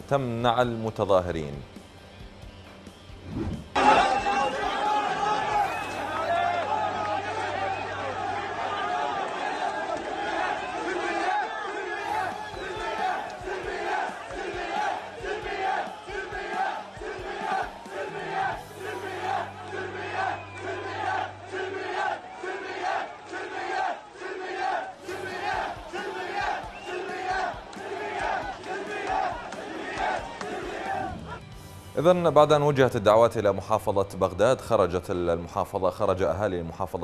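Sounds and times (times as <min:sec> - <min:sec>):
crowd chanting in unison: 0:03.3 - 0:31.4.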